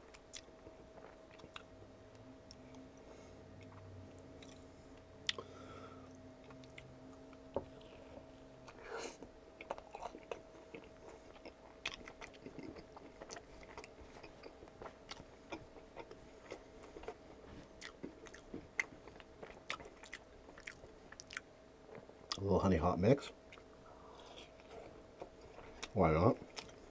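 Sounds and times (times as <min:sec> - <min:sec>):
person chewing fried chicken: 0:09.6 - 0:21.5, 0:23.5 - 0:26.9.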